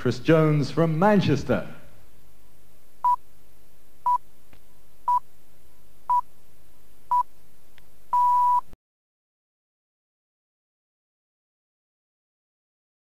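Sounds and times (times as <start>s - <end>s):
faint hum: 0.0s - 8.8s
time signal pips: 8.2s - 8.8s.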